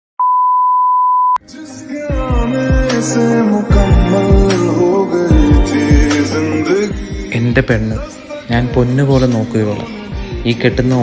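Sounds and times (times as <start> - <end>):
music: 1.4 - 11.0.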